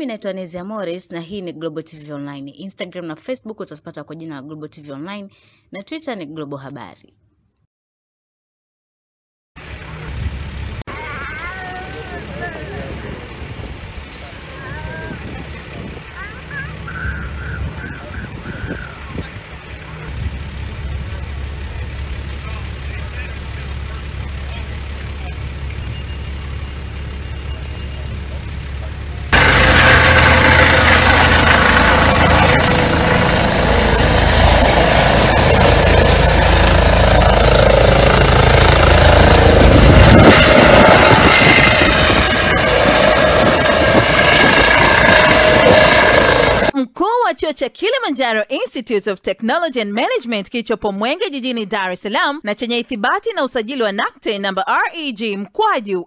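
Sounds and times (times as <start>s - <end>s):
helicopter rotor and turbine: 9.6s - 46.8s.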